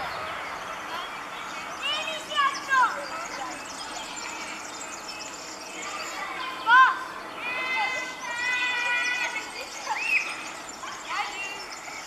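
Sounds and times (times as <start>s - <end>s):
bird singing jingling song: 0.0s - 12.0s.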